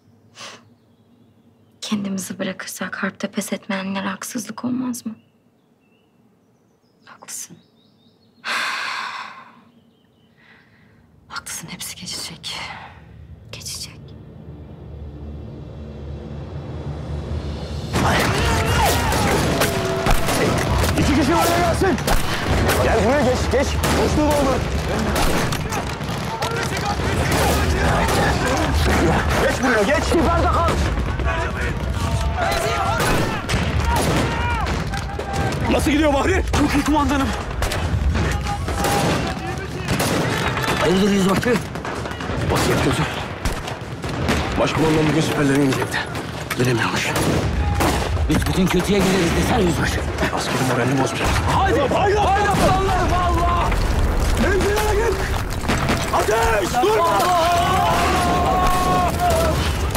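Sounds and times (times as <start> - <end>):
breaths: 8.4 - 9.7, 10.3 - 11.2, 12.6 - 13.4, 22.1 - 22.7
rifle shots: 19.0 - 30.0, 37.5 - 46.4.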